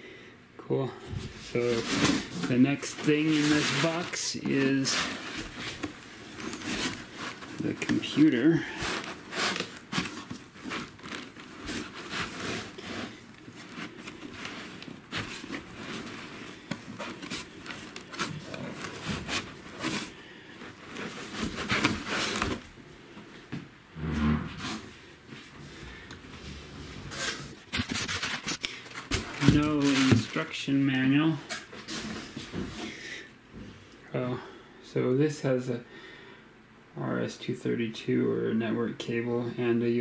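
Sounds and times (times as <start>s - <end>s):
cardboard box being handled: 1.7s - 22.6s, 27.1s - 30.4s.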